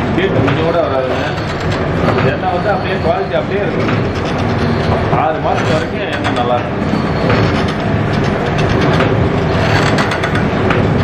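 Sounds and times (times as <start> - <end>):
oil press motor droning: 0.0 - 11.0
people talking: 0.2 - 1.4, 2.1 - 3.8, 5.1 - 6.8.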